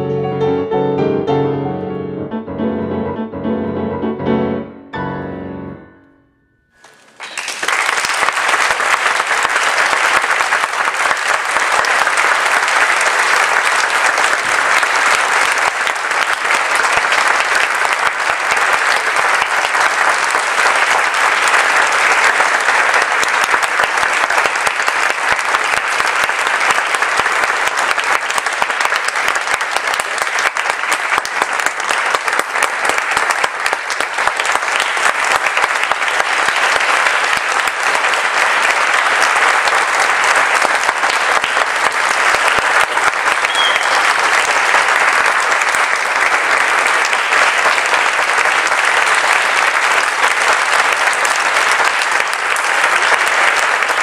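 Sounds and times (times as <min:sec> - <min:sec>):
audience applauding: 0:06.8 - 0:54.0.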